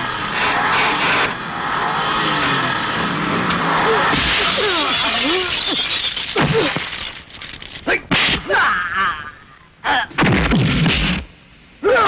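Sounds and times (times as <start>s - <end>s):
glass shattering: 4.1s - 8.3s
glass fragments tinkling: 4.4s - 7.9s.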